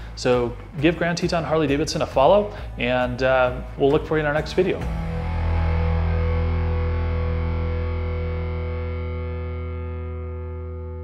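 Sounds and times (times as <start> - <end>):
distorted electric guitar chord: 4.8 - 11.0.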